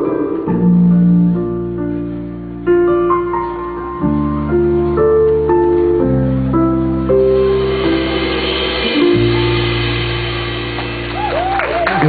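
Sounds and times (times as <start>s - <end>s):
rock band chord ringing: 7.2s - 12.0s
audience cheering: 10.8s - 12.0s.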